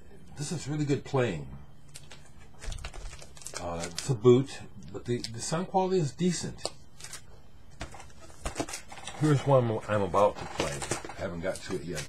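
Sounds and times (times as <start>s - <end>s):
record sleeves rustling: 1.9s - 4.2s, 6.9s - 12.0s.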